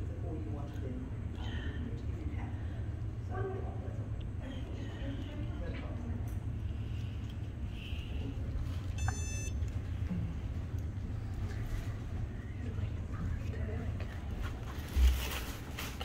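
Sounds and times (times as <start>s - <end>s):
steady low hum: 0.0s - 16.0s
short high beep: 9.0s - 9.6s.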